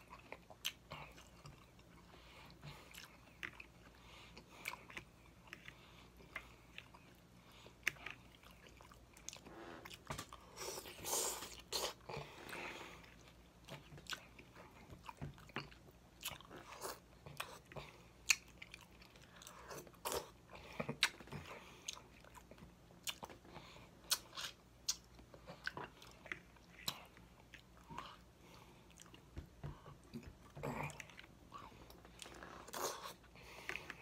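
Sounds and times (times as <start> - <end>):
chewing and mouth smacks: 0.0 - 34.0.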